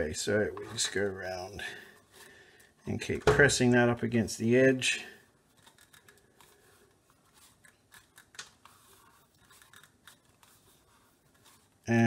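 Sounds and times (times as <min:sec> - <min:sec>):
wire scraping and rubbing: 0:05.4 - 0:11.9.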